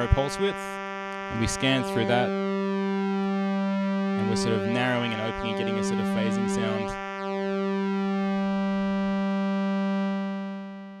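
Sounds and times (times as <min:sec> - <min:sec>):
buzzy synthesizer pulse note: 0:00.0 - 0:11.0.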